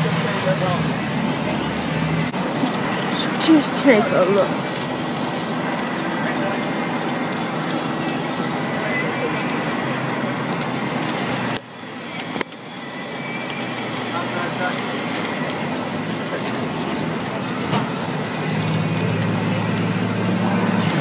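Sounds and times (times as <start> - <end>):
bus engine and road noise: 0.0 - 21.0
indistinct passenger chatter: 0.0 - 21.0
low engine hum: 0.0 - 21.0.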